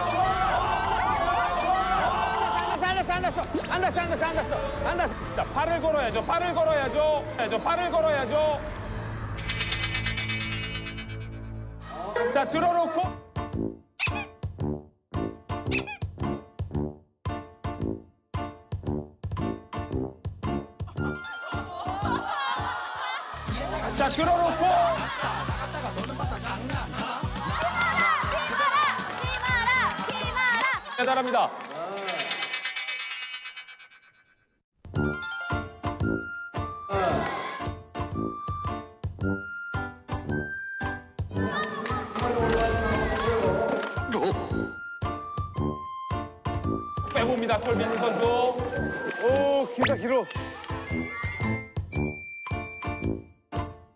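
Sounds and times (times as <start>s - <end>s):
crowd shouting and cheering: 0.0s - 9.2s, 11.8s - 12.6s, 21.6s - 32.9s, 36.9s - 37.8s, 41.4s - 44.1s
high warbling squeak: 9.4s - 11.6s, 14.0s - 14.3s, 15.7s - 16.0s, 32.0s - 34.5s
playful comic background music: 9.4s - 30.8s, 34.9s - 53.9s.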